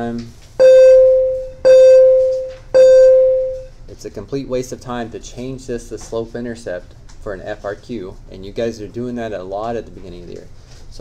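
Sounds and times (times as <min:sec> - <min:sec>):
ringing musical note: 0:00.6 - 0:03.7.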